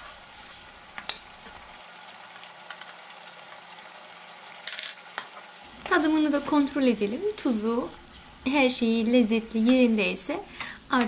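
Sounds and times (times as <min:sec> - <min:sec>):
tomato sauce sizzling in a pan: 0:00.0 - 0:11.0.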